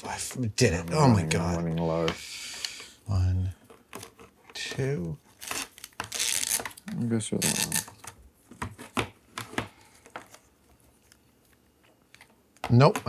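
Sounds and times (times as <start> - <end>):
plastic tubes rustling and clicking: 0.0 - 13.0.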